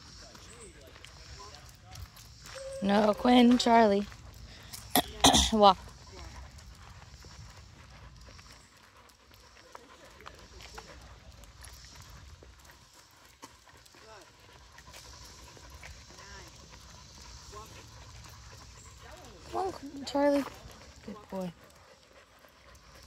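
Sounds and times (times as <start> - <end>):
dog panting: 0.0 - 23.0
faint footsteps on pavement: 0.0 - 23.0.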